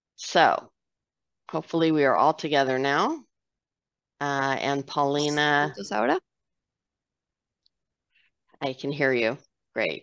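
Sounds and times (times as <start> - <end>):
woman speaking: 4.2 - 6.3, 8.6 - 10.0.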